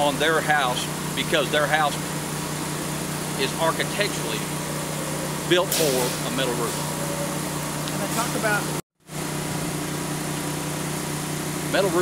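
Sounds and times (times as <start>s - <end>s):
motor drone: 0.0s - 12.0s.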